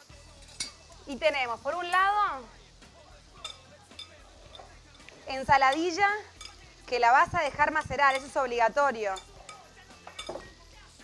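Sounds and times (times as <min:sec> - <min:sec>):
fork clinking on glass: 0:00.3 - 0:01.0, 0:03.4 - 0:06.7, 0:07.7 - 0:08.5, 0:09.1 - 0:10.6.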